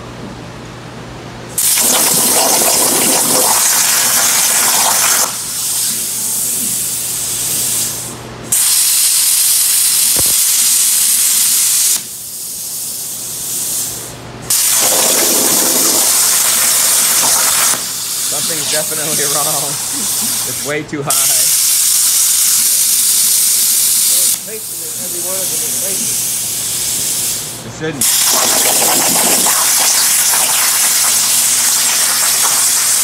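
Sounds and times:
plasma torch arc hissing: 1.5s - 33.0s.

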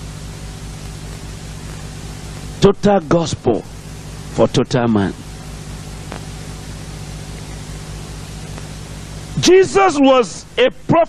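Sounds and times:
low electrical hum: 0.0s - 11.0s
steady hiss: 0.0s - 11.0s
faint ticks: 6.0s - 6.4s, 8.5s - 8.7s.

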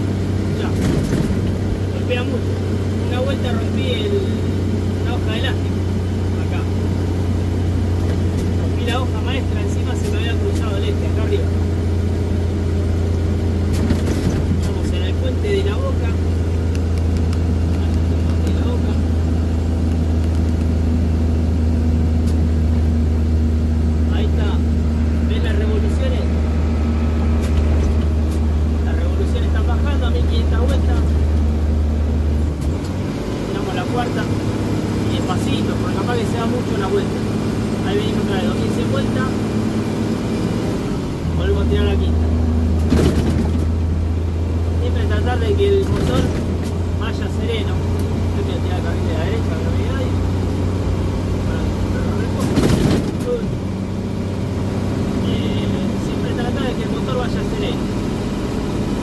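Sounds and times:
road noise: 0.0s - 59.0s
truck diesel engine drone: 0.0s - 59.0s.

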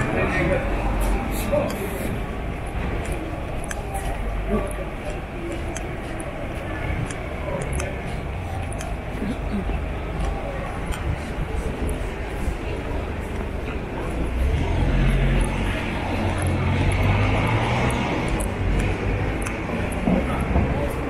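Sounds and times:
city street ambience: 0.0s - 21.0s
passing vehicle engine rumble: 0.0s - 21.0s.

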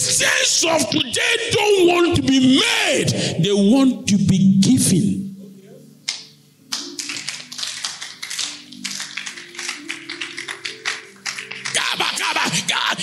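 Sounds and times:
congregation clapping: 6.1s - 12.8s.

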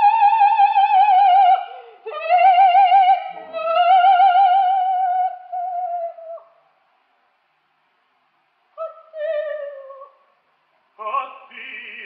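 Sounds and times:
faint recording hiss: 0.0s - 12.0s.

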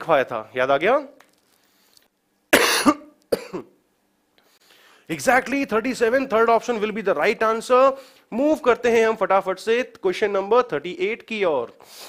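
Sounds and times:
man coughing: 2.5s - 3.8s.

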